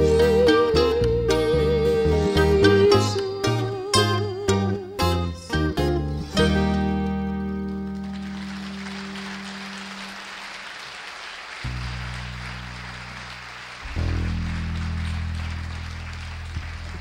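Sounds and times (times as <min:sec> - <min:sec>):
audience applauding: 0:06.6 - 0:17.0.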